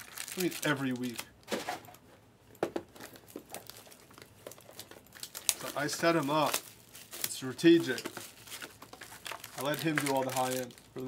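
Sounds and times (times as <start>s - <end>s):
plastic wrapping crinkling: 0.0s - 2.0s, 2.9s - 11.0s.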